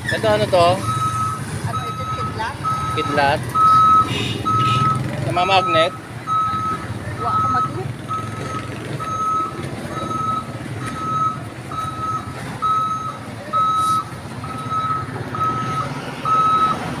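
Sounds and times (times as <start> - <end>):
street traffic rumble: 0.0 - 17.0
reversing alarm beeping: 0.1 - 16.8.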